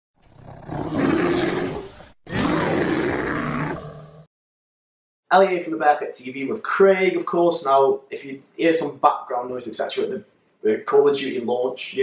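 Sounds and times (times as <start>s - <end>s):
bear roaring: 0.4s - 4.3s.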